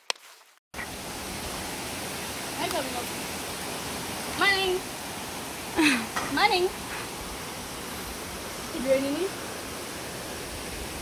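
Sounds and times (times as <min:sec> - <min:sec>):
waterfall rushing: 0:00.8 - 0:11.0.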